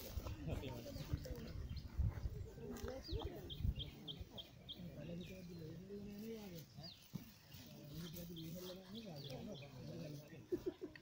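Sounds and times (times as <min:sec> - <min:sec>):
people talking indistinctly: 0:00.0 - 0:11.0.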